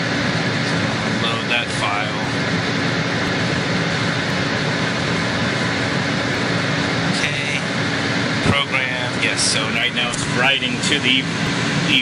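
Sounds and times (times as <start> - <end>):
cooling fan humming: 0.0 - 12.0
water pump droning: 0.0 - 12.0.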